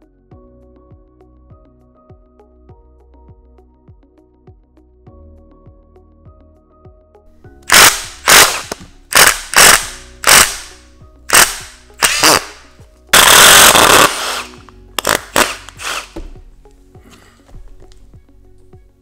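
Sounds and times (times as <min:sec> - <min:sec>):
impact driver bursts: 0:07.7 - 0:16.2.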